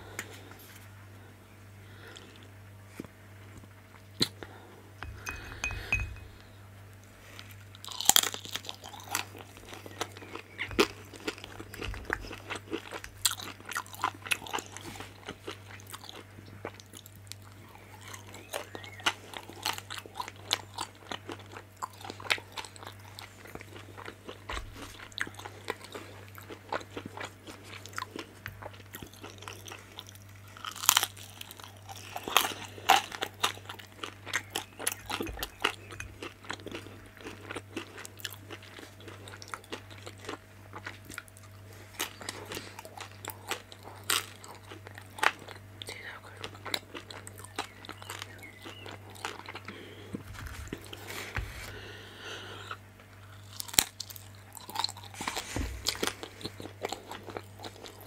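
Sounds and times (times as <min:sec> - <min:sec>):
faint low hum: 0:00.0 - 0:58.0
crunchy chewing: 0:01.9 - 0:58.0.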